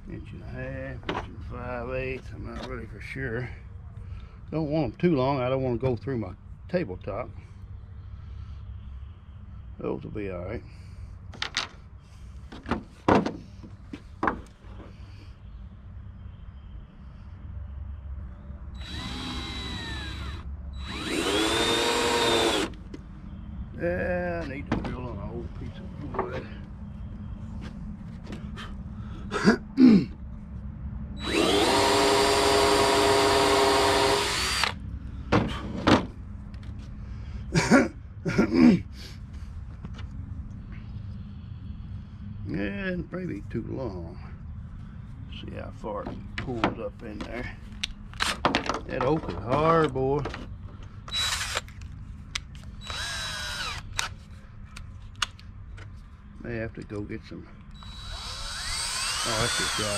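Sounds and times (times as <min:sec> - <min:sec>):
cordless drill driving screw: 0:18.8 - 0:22.7, 0:31.2 - 0:34.8, 0:51.1 - 0:51.7, 0:52.8 - 0:54.2, 0:57.8 - 0:59.9.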